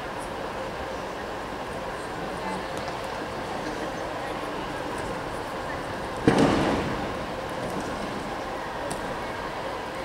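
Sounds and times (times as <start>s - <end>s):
murmur of arena voices: 0.0s - 10.0s.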